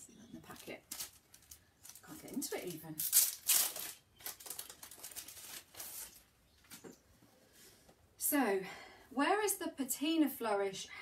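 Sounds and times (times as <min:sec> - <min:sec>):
tissue paper rustling and crinkling: 0:00.4 - 0:06.3.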